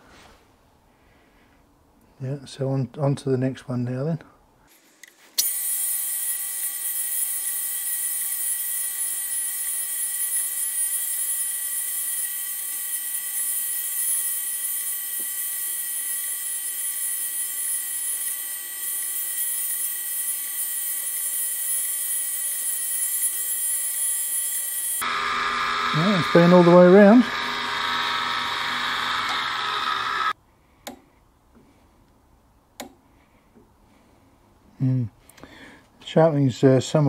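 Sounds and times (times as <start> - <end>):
grinder wheel grinding: 5.8 - 30.4.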